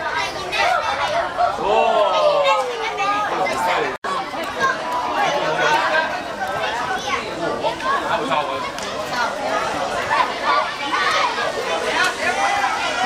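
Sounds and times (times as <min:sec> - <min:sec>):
chatter of young voices: 0:00.0 - 0:13.0.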